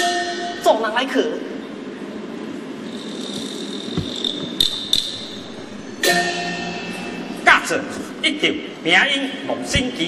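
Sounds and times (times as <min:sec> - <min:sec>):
hall ambience: 0:01.8 - 0:08.9.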